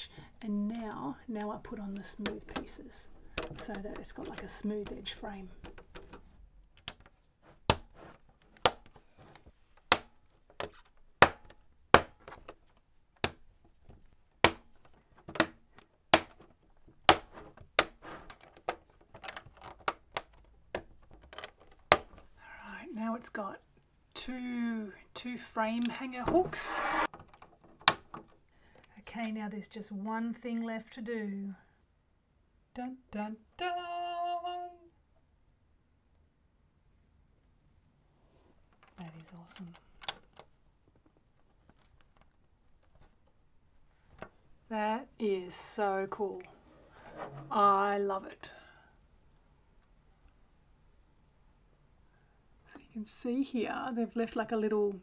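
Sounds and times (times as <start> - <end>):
plastic pieces snapping onto studs: 2.0 - 22.4, 27.1 - 28.9, 39.6 - 43.4.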